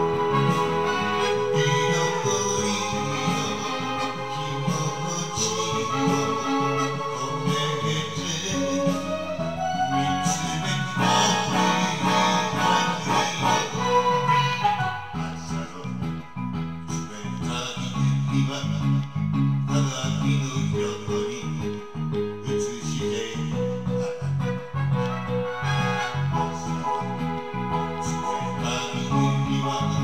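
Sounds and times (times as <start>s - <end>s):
guitar: 0.0s - 30.0s
pop backing track from television: 0.0s - 30.0s.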